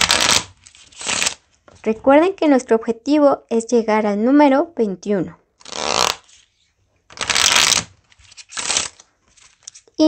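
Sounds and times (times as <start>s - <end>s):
playing cards being shuffled: 0.0s - 1.8s, 5.6s - 10.0s.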